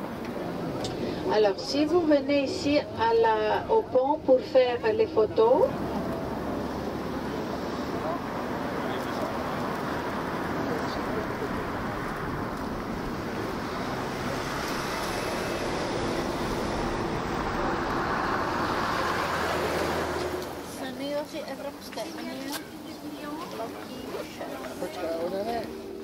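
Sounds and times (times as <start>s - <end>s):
road traffic passing: 0.0s - 26.0s.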